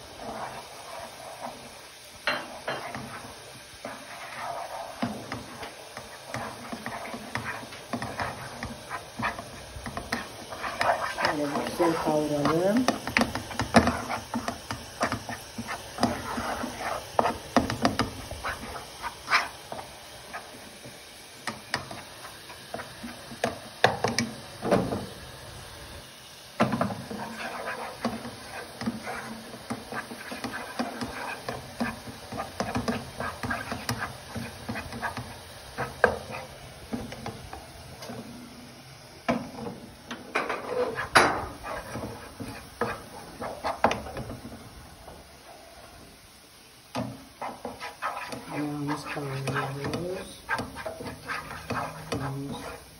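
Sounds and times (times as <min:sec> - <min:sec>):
wooden spoon scraping a pan: 0:00.0 - 0:25.2, 0:26.6 - 0:52.9.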